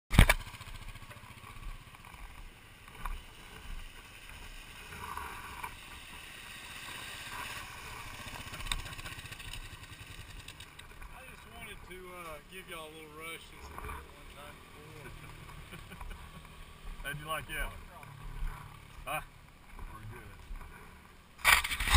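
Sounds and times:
motorcycle idling: 0.2 - 21.9.

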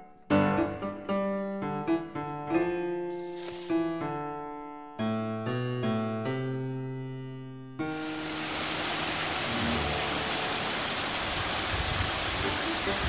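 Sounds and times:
solo piano music: 0.0 - 11.4.

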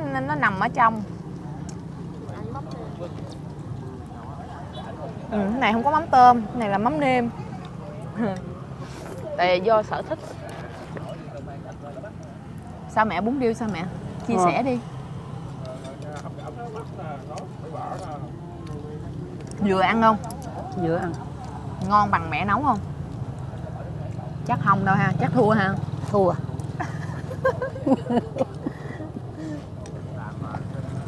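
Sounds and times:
background chatter of voices: 0.0 - 31.0
low hum of street noise: 0.0 - 31.0.

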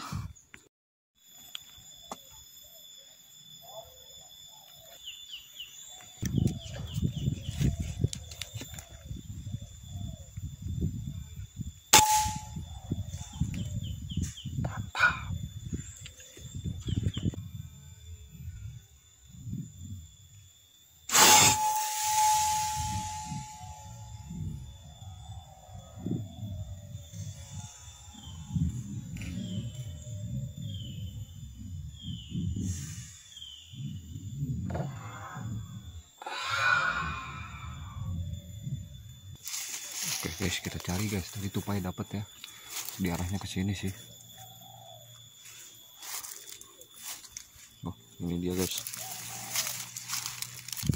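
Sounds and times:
brief ringing tone: 12.0 - 12.7, 21.1 - 24.6
hiss: 21.1 - 23.1, 32.4 - 33.9.

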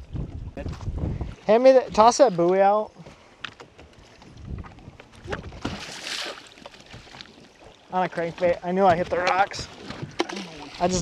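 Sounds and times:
waves lapping against boat hull: 0.0 - 11.0.

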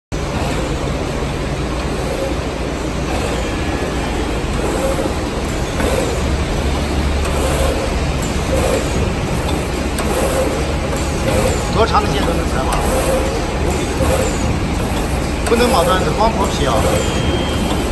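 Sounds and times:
machine mechanical drone: 0.1 - 17.9.

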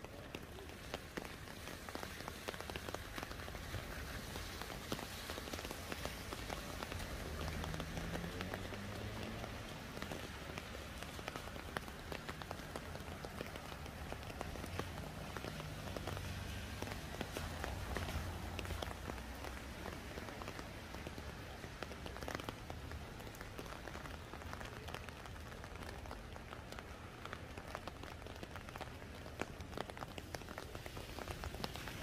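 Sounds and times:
low traffic rumble: 0.0 - 32.0
rain falling on wet pavement: 0.0 - 32.0.

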